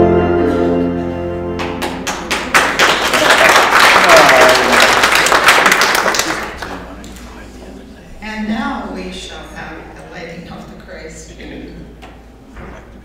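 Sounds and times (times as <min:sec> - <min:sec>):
congregation applauding: 0:01.5 - 0:07.0.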